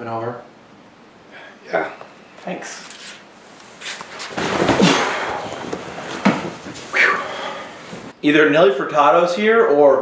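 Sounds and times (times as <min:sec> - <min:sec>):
leather couch squeaking: 0:03.8 - 0:08.1.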